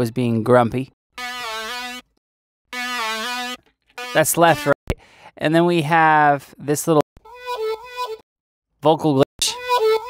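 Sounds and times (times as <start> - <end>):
bright synth lead note: 1.2 - 2.1, 2.7 - 4.8.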